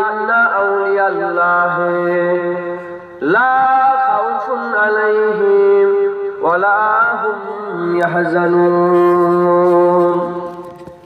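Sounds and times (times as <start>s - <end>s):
man chanting long notes: 6.5s - 10.6s.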